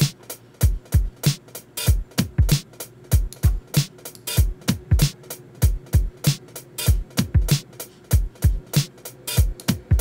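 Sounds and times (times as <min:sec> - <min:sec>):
kick drum: 0:00.0 - 0:01.2, 0:01.9 - 0:03.6, 0:04.4 - 0:06.2, 0:06.9 - 0:08.6, 0:09.4 - 0:10.0
closed hi-hat ticks: 0:00.0 - 0:10.0.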